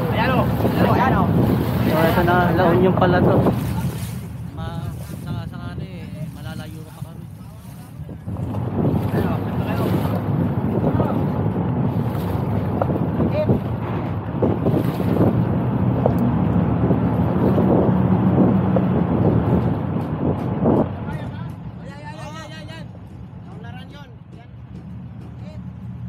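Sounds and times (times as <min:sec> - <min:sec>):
water noise: 0:00.0 - 0:26.0
wind buffeting microphone: 0:00.0 - 0:26.0.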